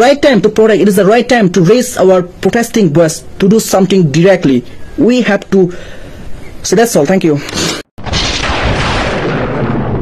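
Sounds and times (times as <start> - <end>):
thunder crack and rumble: 8.0 - 10.0.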